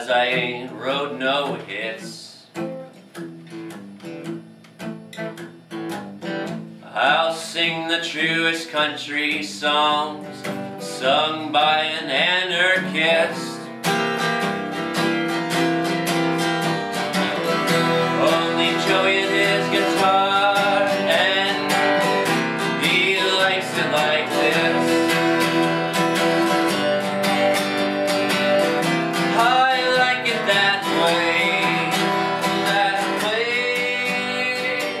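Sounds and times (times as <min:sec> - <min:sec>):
acoustic guitar strumming: 0:00.0 - 0:35.0.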